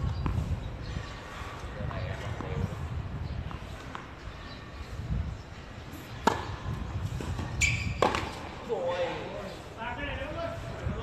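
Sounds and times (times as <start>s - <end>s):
racket hitting tennis ball: 6.0s - 8.6s
ball bouncing on hard court: 6.2s - 8.5s
shoe squeal: 7.4s - 8.4s.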